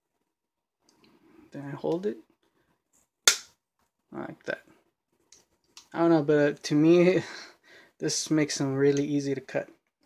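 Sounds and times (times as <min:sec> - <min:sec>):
wire cutters snapping wooden stick: 0:03.3 - 0:03.5.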